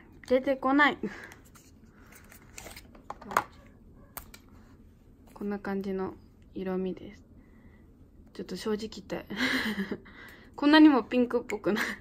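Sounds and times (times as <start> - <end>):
person laughing: 9.3 - 10.1.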